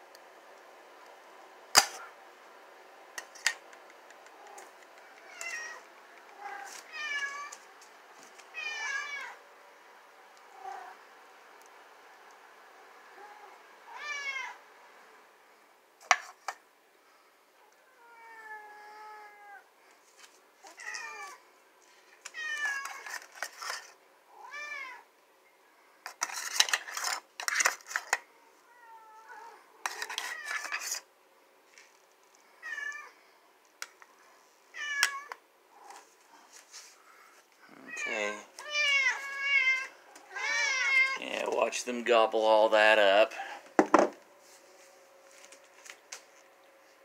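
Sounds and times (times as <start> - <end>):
cats meowing: 4.4 - 7.7, 8.5 - 9.4, 13.1 - 14.6, 17.9 - 19.7, 20.6 - 21.4, 22.2 - 23.2, 24.3 - 25.1, 28.3 - 30.8, 32.5 - 33.2, 34.7 - 36.1, 37.6 - 41.2
spoon scraping food from a can: 22.6 - 24.0, 26.1 - 28.2, 29.8 - 31.1.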